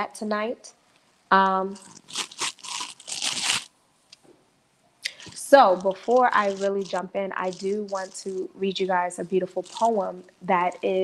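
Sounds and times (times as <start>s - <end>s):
close rustling and crackling: 1.8s - 4.2s, 5.1s - 8.5s, 9.5s - 11.0s.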